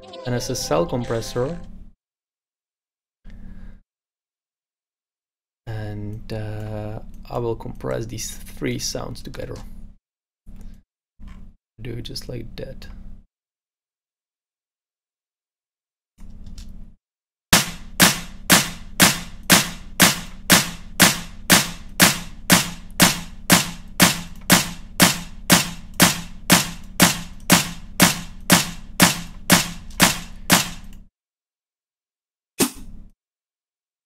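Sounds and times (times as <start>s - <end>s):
clap and snare drum hits: 17.6s - 30.8s.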